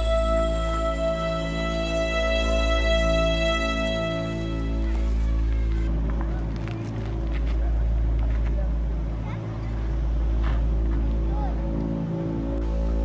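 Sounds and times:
background music with low drone: 0.0s - 13.0s
people's voices: 0.0s - 13.0s.

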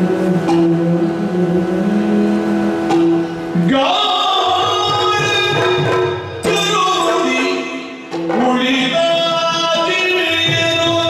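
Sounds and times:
reedy harmonium drone: 0.0s - 8.1s.

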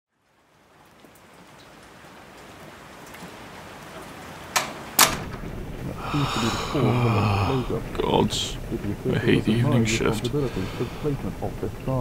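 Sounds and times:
rain: 0.1s - 12.0s
low rumble: 5.1s - 12.0s.

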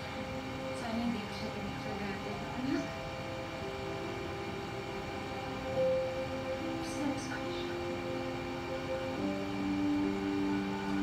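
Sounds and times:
held notes of background score: 0.0s - 11.0s
low hiss: 0.0s - 11.0s.

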